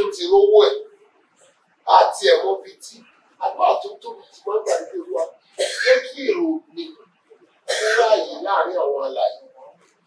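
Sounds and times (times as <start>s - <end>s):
man preaching into microphone: 0.0s - 1.0s, 1.9s - 7.0s, 7.6s - 9.8s.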